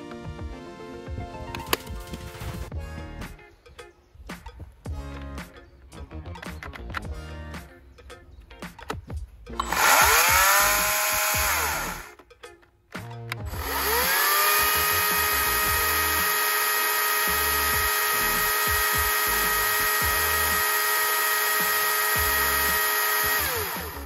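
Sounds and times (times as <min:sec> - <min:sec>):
clicks: 0:01.5 - 0:02.3, 0:06.2 - 0:16.4
chainsaw motor whine: 0:09.6 - 0:12.2, 0:13.4 - 0:24.0.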